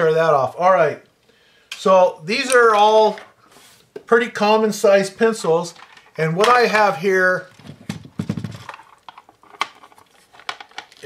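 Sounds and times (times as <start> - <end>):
plastic case clicks and rattles: 7.5 - 11.0.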